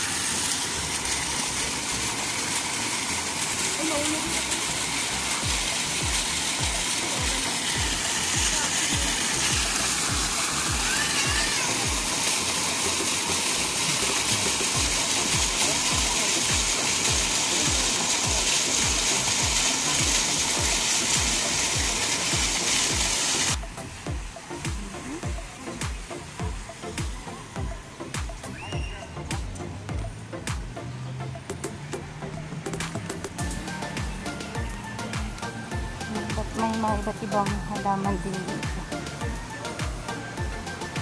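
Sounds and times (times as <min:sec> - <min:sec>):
fountain jets splashing: 0:00.0 - 0:41.0
background music with low beat: 0:00.5 - 0:41.0.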